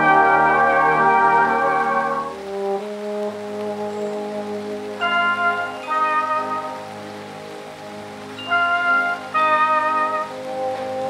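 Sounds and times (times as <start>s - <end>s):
brass band chord: 0.0s - 11.0s
rain falling: 0.0s - 11.0s.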